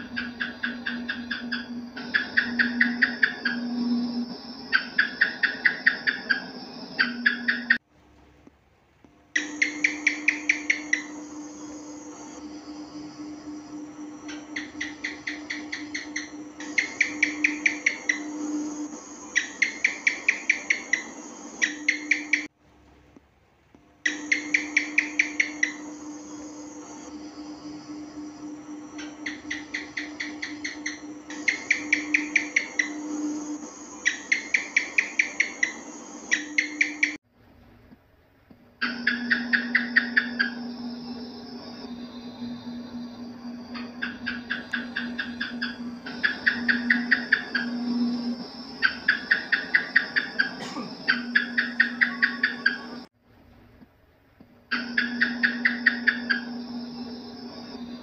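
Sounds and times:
gecko chirping clicks: 0.0s - 7.8s, 9.4s - 22.5s, 24.0s - 28.3s, 28.9s - 37.2s, 38.8s - 40.6s, 41.8s - 53.1s, 54.7s - 56.5s
steady low hum: 0.0s - 58.0s.

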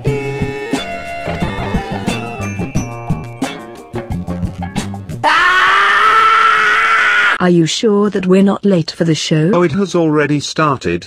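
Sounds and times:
music: 0.0s - 5.2s
woman screaming: 5.2s - 7.4s.

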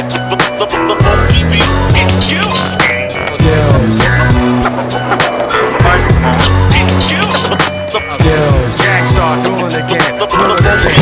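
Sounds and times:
loud hip-hop music: 0.0s - 11.0s
skateboard wheels rolling on concrete: 0.0s - 11.0s
skateboard clacks: 0.4s - 8.1s.

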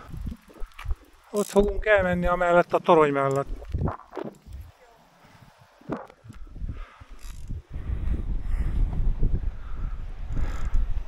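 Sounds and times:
bicycle mechanical click: 0.0s - 4.7s, 7.1s - 7.6s, 10.3s - 11.0s
bicycle riding on asphalt: 0.0s - 11.0s.

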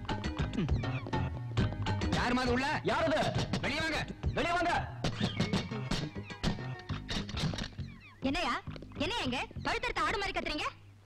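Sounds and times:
background music: 0.0s - 10.7s
drawn-out wavering cry: 0.5s - 1.3s
woman talking: 8.2s - 10.8s.

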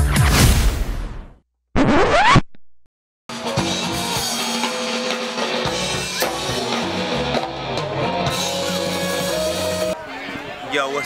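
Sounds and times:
quick rising scratch effect: 1.8s - 2.6s
music with drums: 3.3s - 10.0s.

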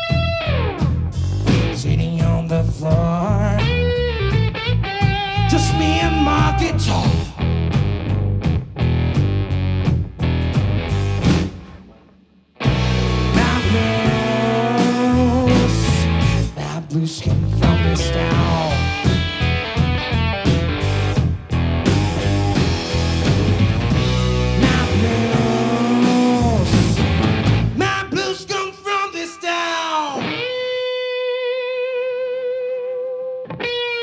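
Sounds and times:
electric bass: 0.0s - 12.0s, 12.6s - 28.1s
drum kit: 0.0s - 16.7s, 17.3s - 28.2s
electric guitar: 0.0s - 34.0s.

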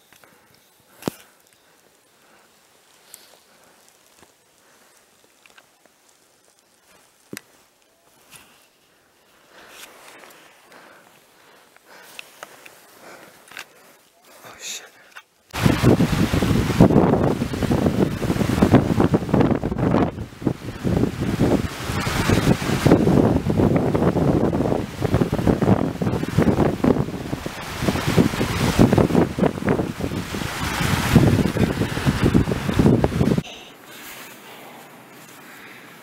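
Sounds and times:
strong wind gusting on microphone: 15.6s - 33.5s.

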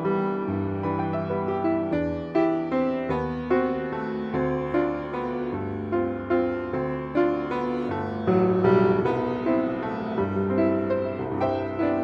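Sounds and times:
solo grand piano: 0.0s - 12.0s.

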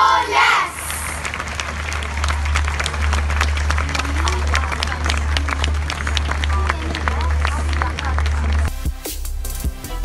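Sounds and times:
audience applauding: 0.0s - 8.8s.

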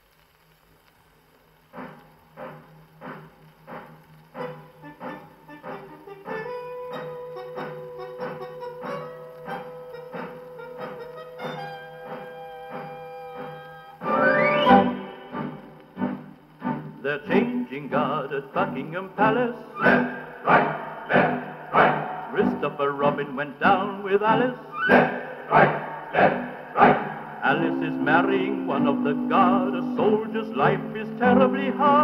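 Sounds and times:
record surface noise: 0.0s - 32.0s
dance band march on gramophone: 1.8s - 17.5s.

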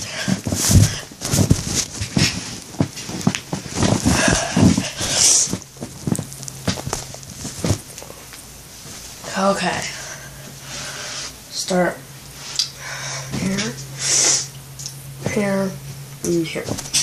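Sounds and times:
pillows rustling: 0.0s - 11.1s, 16.3s - 17.0s
knocks and thumps of handling: 0.2s - 8.1s.

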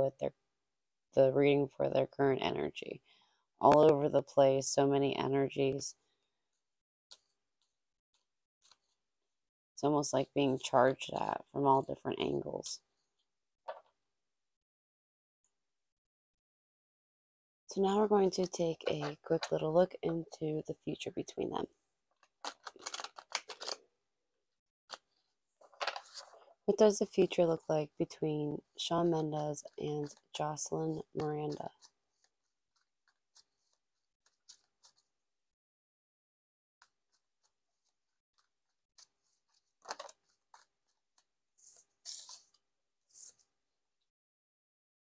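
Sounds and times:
cards being riffle-shuffled: 22.2s - 23.8s, 31.2s - 35.1s, 39.0s - 43.4s.

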